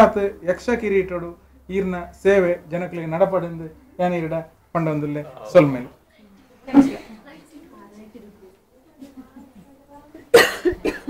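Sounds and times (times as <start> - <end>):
faint talking: 5.0 - 10.4
person coughing loudly: 10.3 - 11.0.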